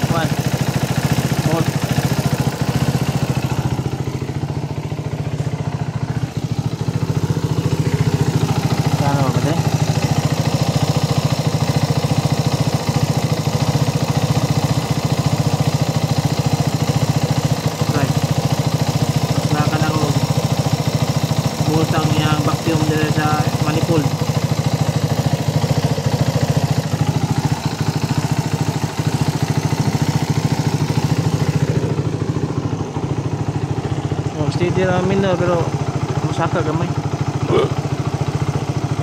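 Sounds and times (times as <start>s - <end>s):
motorcycle engine idling: 0.0s - 39.0s.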